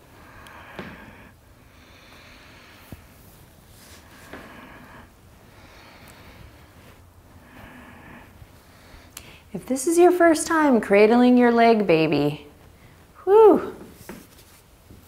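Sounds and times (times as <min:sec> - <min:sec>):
woman breathing deeply: 0:00.0 - 0:09.6.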